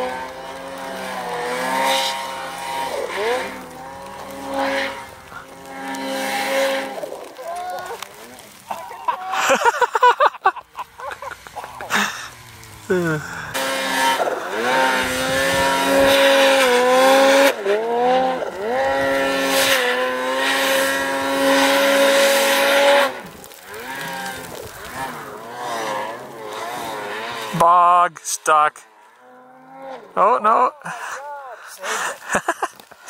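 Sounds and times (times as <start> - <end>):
snowmobile engine revving: 0.0 - 33.0.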